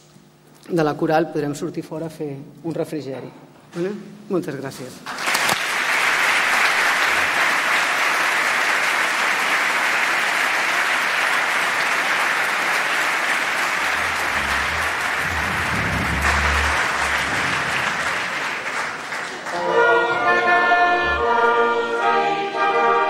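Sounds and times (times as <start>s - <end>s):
audience applause: 5.1s - 19.9s.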